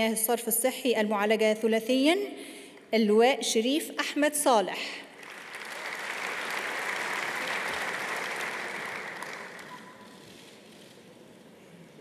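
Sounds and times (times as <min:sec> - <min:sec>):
audience applauding: 0:05.2 - 0:10.6.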